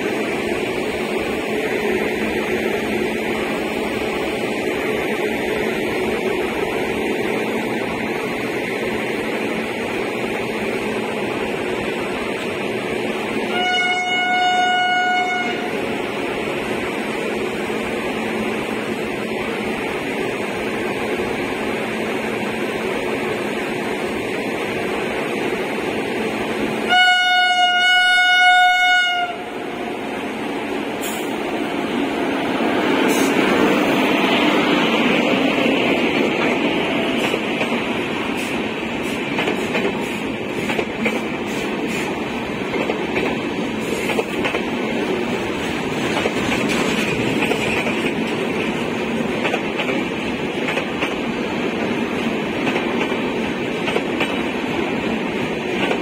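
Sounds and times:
train rumble: 0.0s - 56.0s
locomotive air horn blasts: 13.5s - 15.8s, 26.9s - 29.5s.

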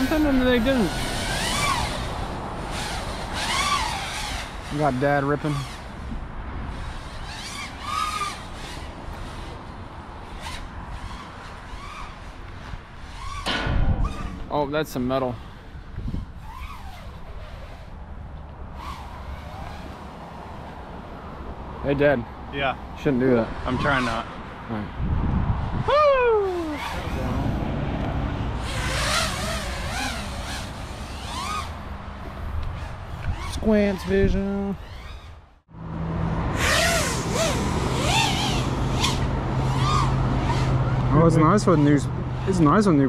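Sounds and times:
quadcopter motors whining: 0.0s - 14.5s, 15.1s - 18.1s, 18.7s - 21.1s, 25.8s - 35.6s, 36.5s - 43.0s.

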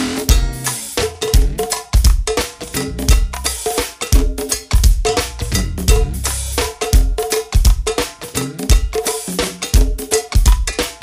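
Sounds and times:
drum kit: 0.0s - 11.0s
hand percussion: 0.0s - 11.0s
cowbell: 0.3s - 11.0s.

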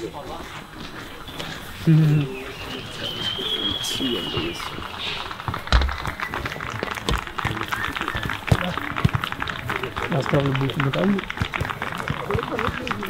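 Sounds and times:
indistinct men's voices: 1.1s - 13.0s
high whistling tone: 1.2s - 6.4s
sharp thumps: 5.4s - 9.3s.

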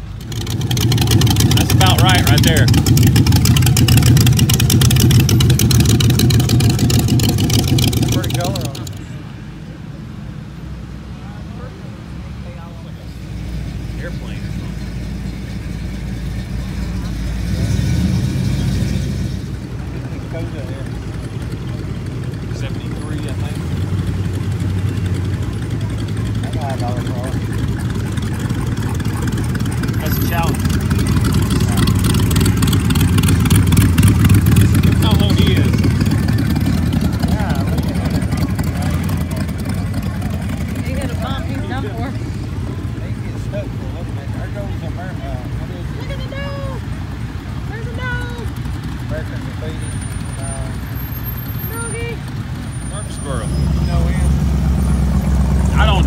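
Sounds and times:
vehicle engines passing: 0.0s - 56.0s.

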